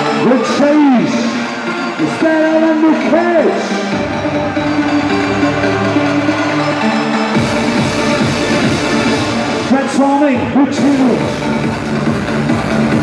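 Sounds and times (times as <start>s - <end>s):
loud electronic dance music: 0.0s - 13.0s
deep bass: 2.9s - 13.0s.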